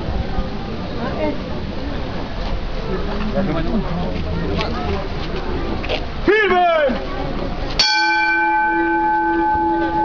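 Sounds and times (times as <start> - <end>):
metal bell ringing: 7.8 - 10.0.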